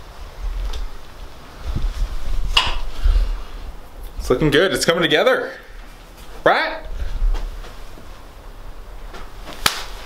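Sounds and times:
faint low room noise: 0:00.0 - 0:10.0
sharp crack: 0:09.2 - 0:10.0.

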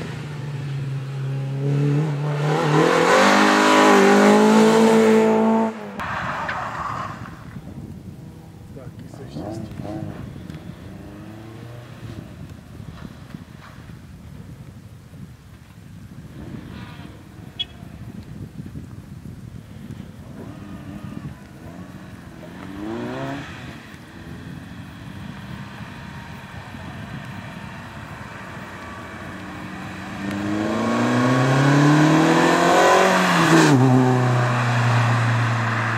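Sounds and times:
car engine revving: 0:00.0 - 0:07.1, 0:09.1 - 0:12.5, 0:20.3 - 0:35.9.

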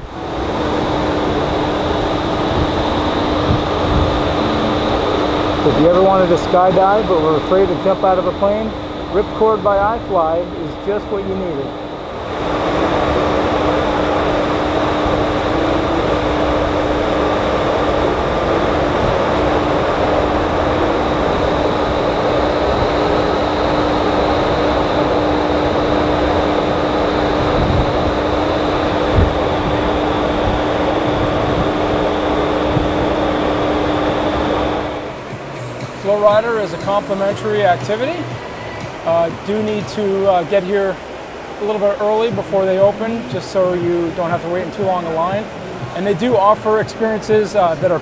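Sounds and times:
low fan hum: 0:00.0 - 0:48.0
thin high whine: 0:00.0 - 0:48.0
wind tunnel air rush: 0:00.0 - 0:48.0.

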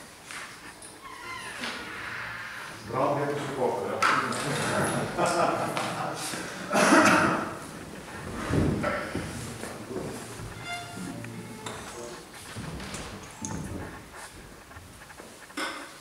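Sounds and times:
string ensemble playing quietly: 0:09.6 - 0:13.8.

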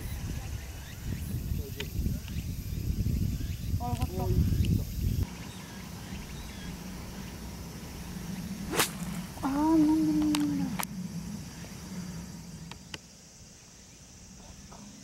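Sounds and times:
golf club striking ball: 0:08.7 - 0:09.2.

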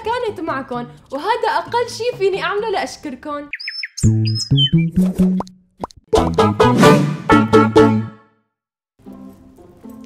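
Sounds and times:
cartoon bird chirps: 0:03.5 - 0:05.1
cheerful title music: 0:04.0 - 0:05.5, 0:06.1 - 0:08.4.

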